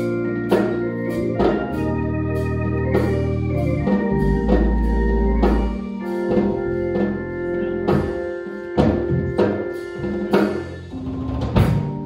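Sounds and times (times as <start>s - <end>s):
organ chords: 0.0s - 12.0s.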